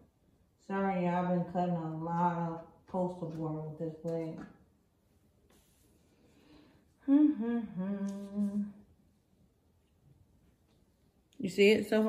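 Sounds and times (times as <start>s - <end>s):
woman humming: 7.0s - 8.9s.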